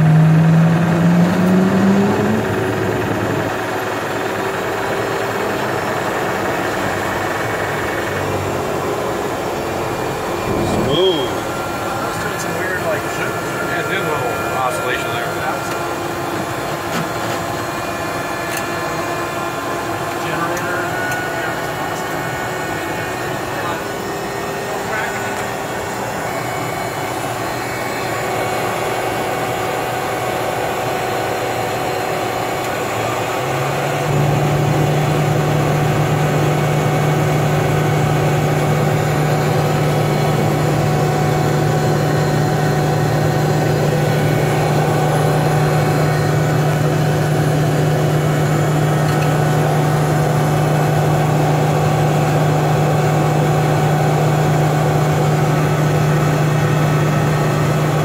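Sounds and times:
steady low drone: 0:00.0 - 0:16.8, 0:22.8 - 0:58.0
turboprop engine running: 0:00.0 - 0:58.0.

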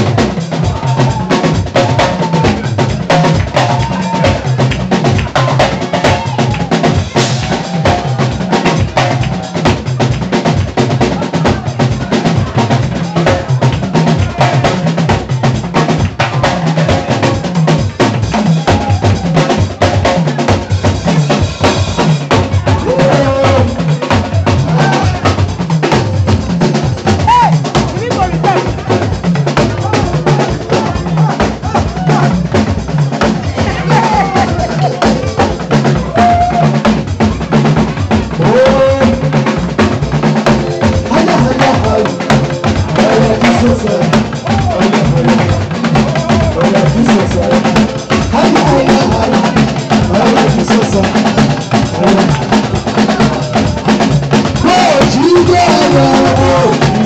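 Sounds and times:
drum kit beat: 0:00.0 - 0:57.0
electronic keyboard melody: 0:34.1 - 0:36.3, 0:39.9 - 0:50.6.

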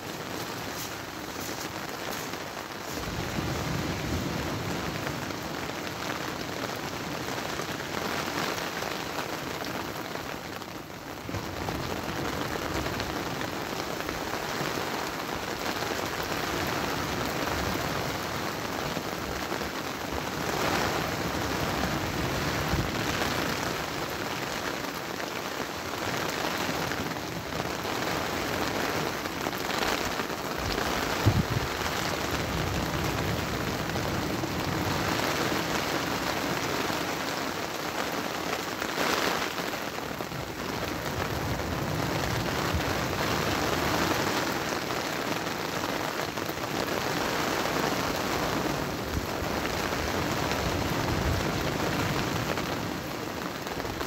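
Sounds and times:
rain hiss: 0:00.0 - 0:54.0
wind: 0:00.0 - 0:54.0.

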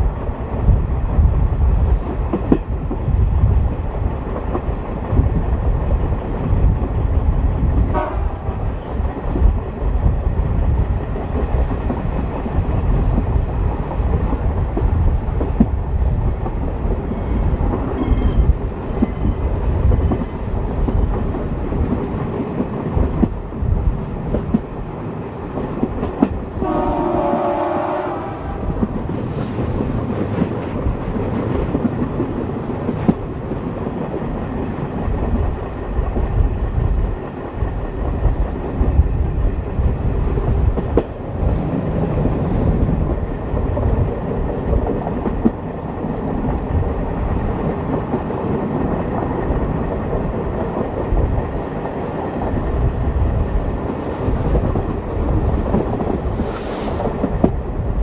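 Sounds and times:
locomotive horn: 0:07.9 - 0:08.5, 0:26.6 - 0:28.6
level-crossing bell ringing: 0:17.3 - 0:19.4.

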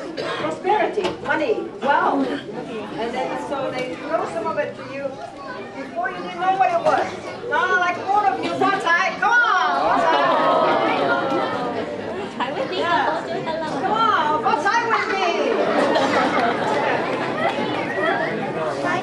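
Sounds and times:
audience chatter: 0:00.0 - 0:19.0.

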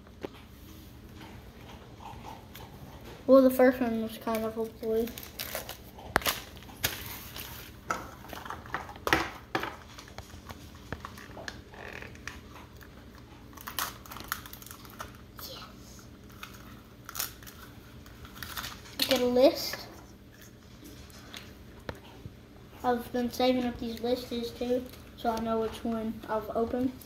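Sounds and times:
plastic wrapping crinkling: 0:04.2 - 0:15.4, 0:16.2 - 0:19.5.

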